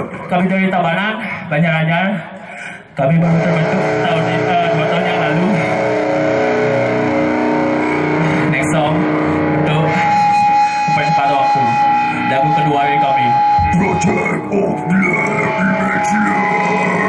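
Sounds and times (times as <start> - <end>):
distorted electric guitars: 3.0 - 17.0
steady high tone: 3.0 - 17.0.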